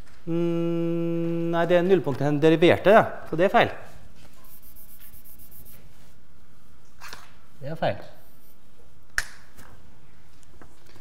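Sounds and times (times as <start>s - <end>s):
chalk scratching on blackboard: 4.3s - 6.0s, 8.2s - 8.6s.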